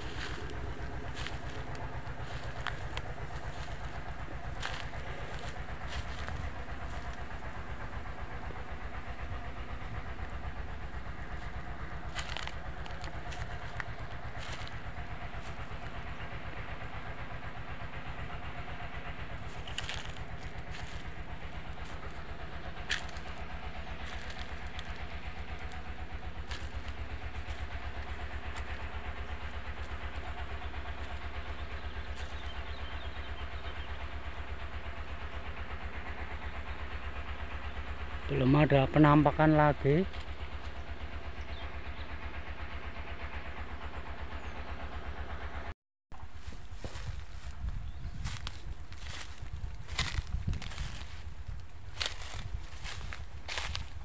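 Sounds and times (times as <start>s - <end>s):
diesel pump engines droning: 0.0s - 54.0s
dry bamboo snapping: 0.1s - 3.9s, 4.6s - 7.2s, 12.0s - 14.8s, 19.6s - 21.1s, 22.9s - 23.4s, 48.2s - 53.9s.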